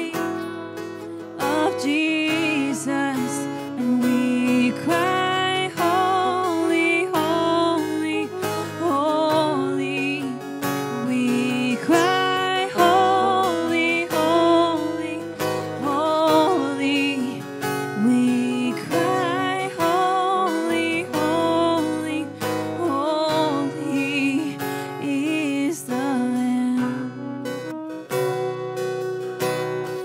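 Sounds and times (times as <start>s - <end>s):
acoustic guitar strummed: 0.0s - 30.0s.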